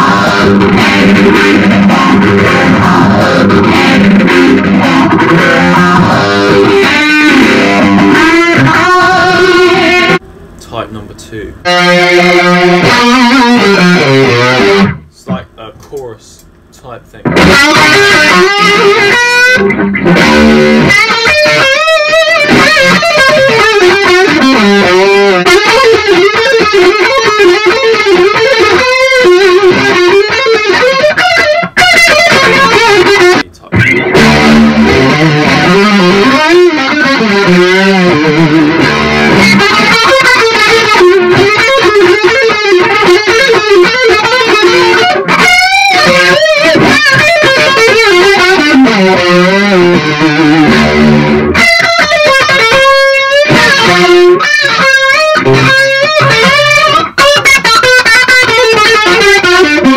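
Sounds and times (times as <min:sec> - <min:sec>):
electric guitar with modulation effect: 0:00.0 - 0:10.8, 0:11.5 - 0:59.9.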